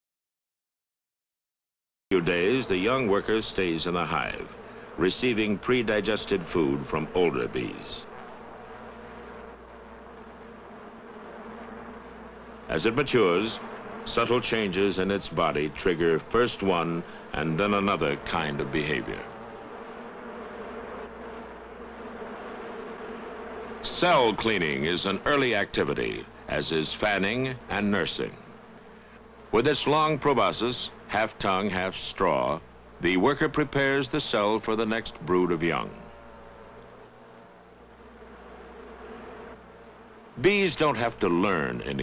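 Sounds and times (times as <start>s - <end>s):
honeybees buzzing: 2.1s - 42.0s.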